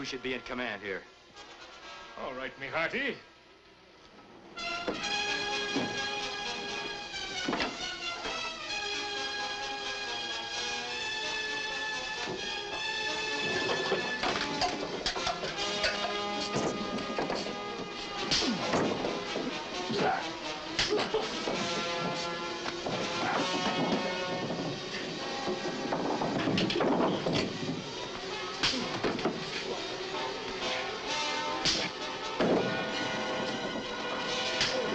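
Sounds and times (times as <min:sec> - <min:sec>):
dramatic background music: 0:04.6 - 0:34.9
punches and bodies crashing: 0:12.2 - 0:28.0, 0:31.6 - 0:34.9.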